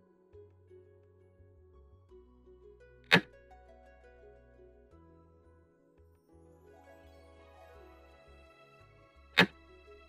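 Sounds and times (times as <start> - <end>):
soft music with plucked notes: 0.0 - 10.0.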